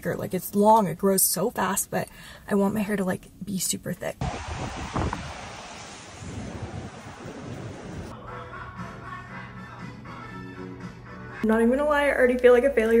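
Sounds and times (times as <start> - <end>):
thump: 4.2 - 6.5
steady rushing noise: 4.2 - 8.1.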